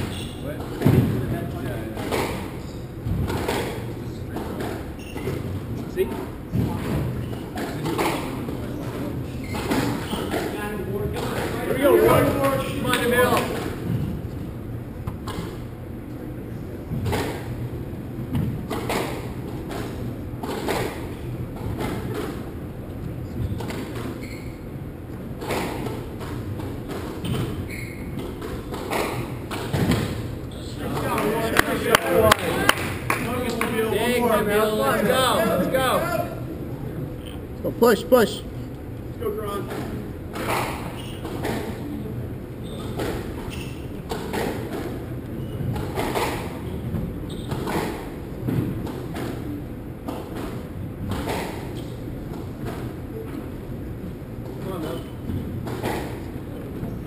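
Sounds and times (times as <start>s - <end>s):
squash ball knocks: 0.6s - 1.4s, 25.4s - 30.3s.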